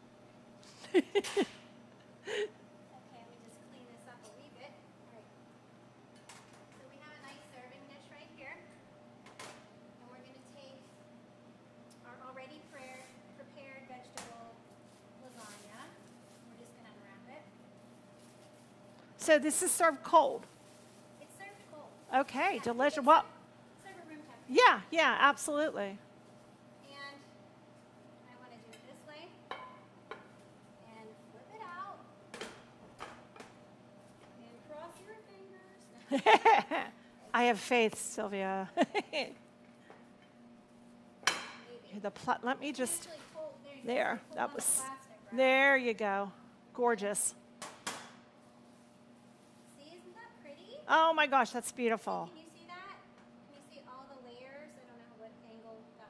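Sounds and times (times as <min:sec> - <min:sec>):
faint kitchen hum: 0:00.0 - 0:56.0.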